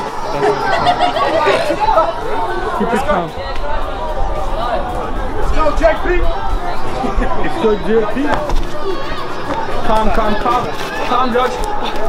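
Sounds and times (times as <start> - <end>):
men talking and calling out: 0.0 - 12.0.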